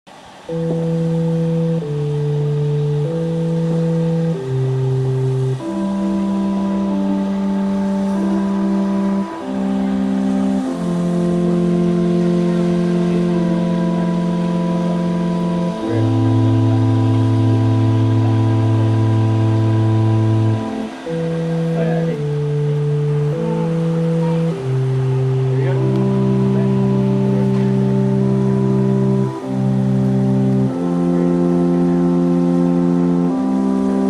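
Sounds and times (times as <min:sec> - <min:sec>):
organ playing sustained chords: 0:00.2 - 0:34.0.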